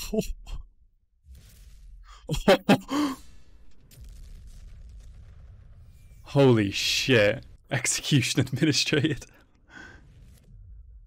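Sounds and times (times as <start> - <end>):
low explosion rumble: 3.2 - 6.3.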